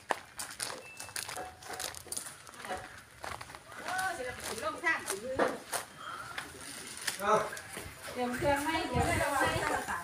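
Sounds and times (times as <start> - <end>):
footsteps crunching on gravel: 0.0 - 9.9.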